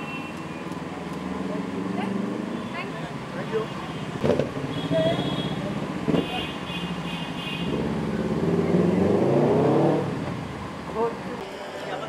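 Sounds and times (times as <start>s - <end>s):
car engine revving: 7.0s - 11.5s.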